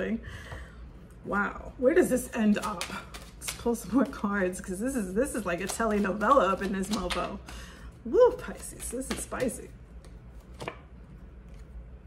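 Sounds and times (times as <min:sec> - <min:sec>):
cards being handled: 0:02.5 - 0:04.2, 0:05.6 - 0:07.6.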